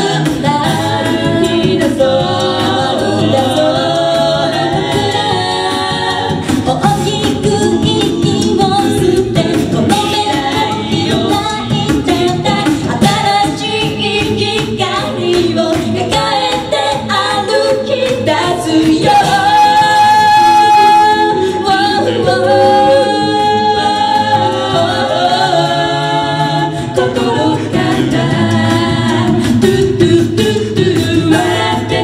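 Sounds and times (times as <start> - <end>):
a cappella group singing in harmony: 0.0 - 32.0
steady percussive beat: 0.0 - 32.0.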